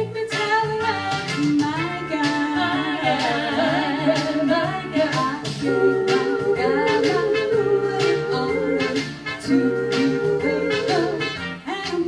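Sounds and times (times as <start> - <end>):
recorded backing music with bass: 0.0 - 12.0
female vocal trio singing: 2.2 - 12.0.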